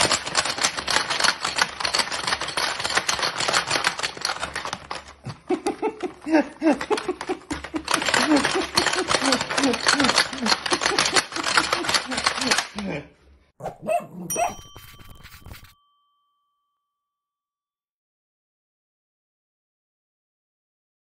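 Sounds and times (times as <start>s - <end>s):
plastic game clattering: 0.0s - 12.9s
person laughing: 5.2s - 13.2s.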